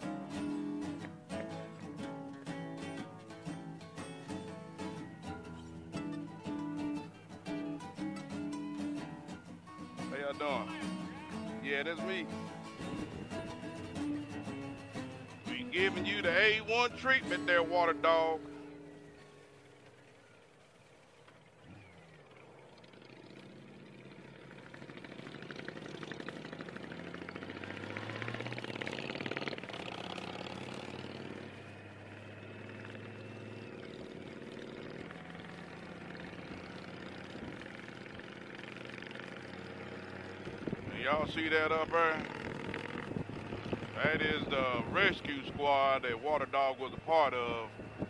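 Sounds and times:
motorcycle engines: 0:00.0 - 0:48.0
road noise: 0:00.0 - 0:48.0.

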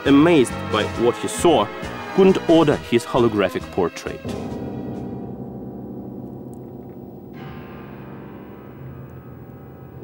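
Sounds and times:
gong-like ringing tones: 0:04.2 - 0:10.0
bright ringing layer: 0:04.3 - 0:10.0.

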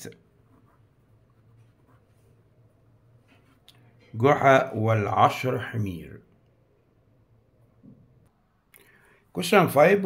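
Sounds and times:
pen scratching on paper: 0:00.3 - 0:02.5.

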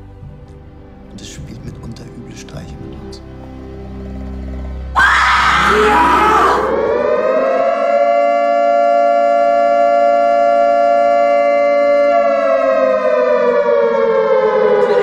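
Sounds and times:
air-raid siren wailing: 0:05.0 - 0:15.0.

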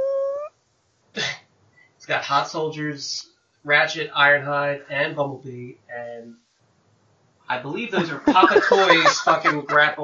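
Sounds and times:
man humming umm: 0:00.0 - 0:00.5.

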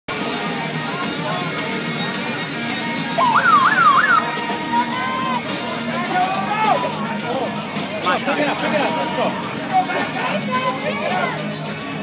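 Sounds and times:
music over public-address system: 0:00.1 - 0:12.0
siren-like wail: 0:03.2 - 0:04.2.

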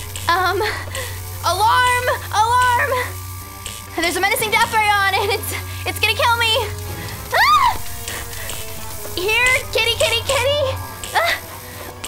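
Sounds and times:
low electric hum: 0:00.0 - 0:12.0
woman screaming and wailing: 0:07.3 - 0:07.9.

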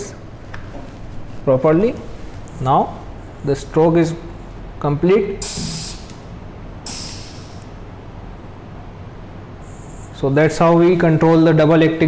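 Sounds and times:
low steady hum: 0:00.0 - 0:12.0
compressed air hissing from valve: 0:05.4 - 0:07.8.

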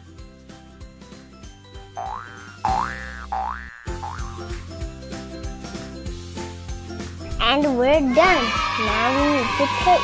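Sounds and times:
light background music: 0:00.0 - 0:10.0
cartoon boing: 0:02.0 - 0:04.4.

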